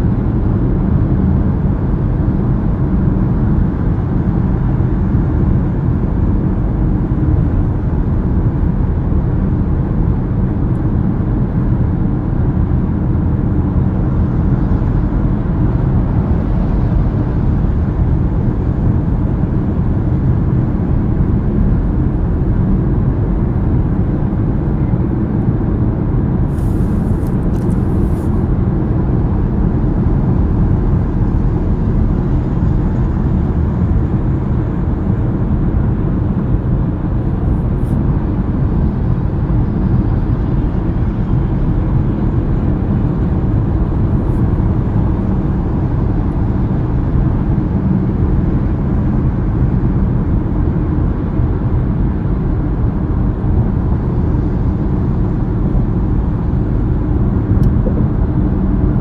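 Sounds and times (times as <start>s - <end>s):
car tyres and engine rumble: 0.0s - 59.0s.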